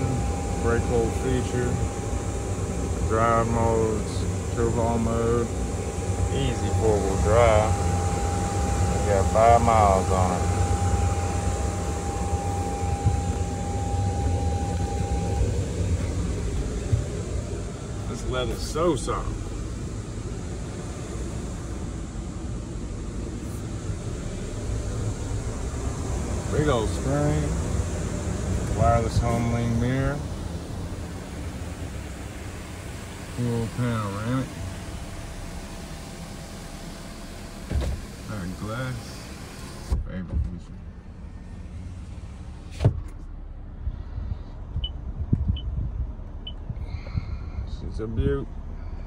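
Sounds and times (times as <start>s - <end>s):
power window motor hum: 0.0s - 21.9s
low rumble: 0.0s - 39.1s, 40.0s - 49.0s
climate control fan blowing: 0.0s - 49.0s
window stopping with a thunk: 37.6s - 38.1s.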